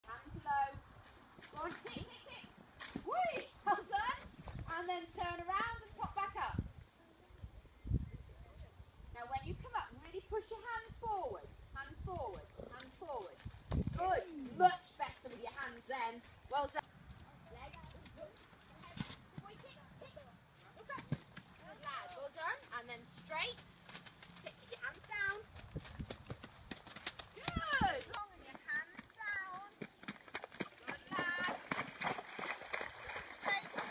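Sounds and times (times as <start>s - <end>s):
pony hoofbeats: 17.5s - 33.9s.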